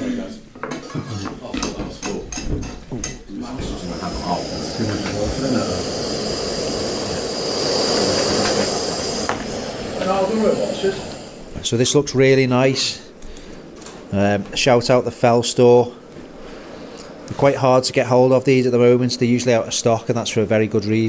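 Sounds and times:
gas stove burner hissing: 2.0s - 20.9s
voices: 3.3s - 13.2s.

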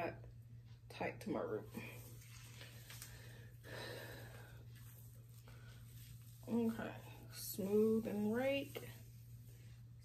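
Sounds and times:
hands rustling hair: 1.8s - 3.2s, 4.3s - 10.0s.

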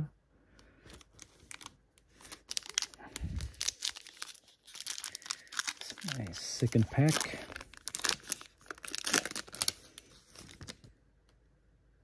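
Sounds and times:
foil pack crinkling and tearing: 0.9s - 10.9s.

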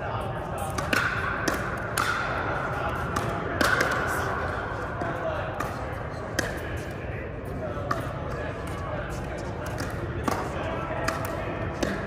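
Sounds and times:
paddles striking plastic ball: 0.7s - 2.4s.

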